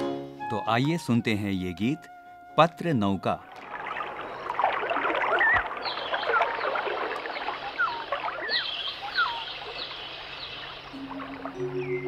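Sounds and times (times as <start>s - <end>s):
birds chirping: 3.0s - 12.0s
flowing water rushing: 3.4s - 12.0s.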